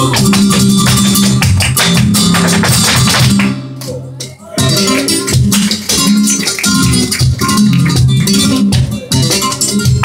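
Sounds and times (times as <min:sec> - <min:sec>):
guitar playing chords: 0:00.0 - 0:10.0
rapid percussive footwork and cajon: 0:00.0 - 0:10.0.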